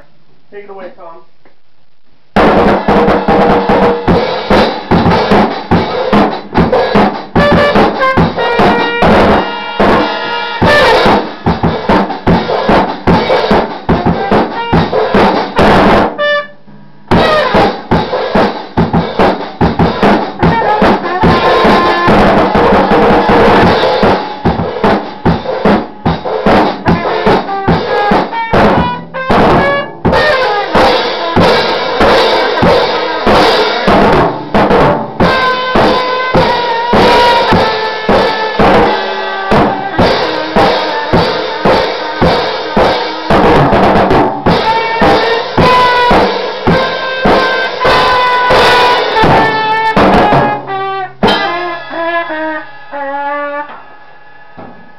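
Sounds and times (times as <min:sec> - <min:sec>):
drum kit with rimshots: 0:00.0 - 0:54.9
trumpet playing jazz: 0:02.4 - 0:18.4, 0:19.1 - 0:54.2.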